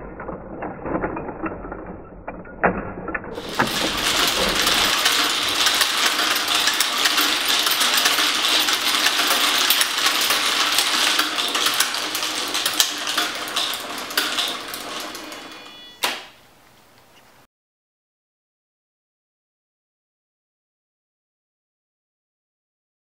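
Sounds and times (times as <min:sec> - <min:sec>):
small balls clicking and clattering: 0:00.0 - 0:16.4.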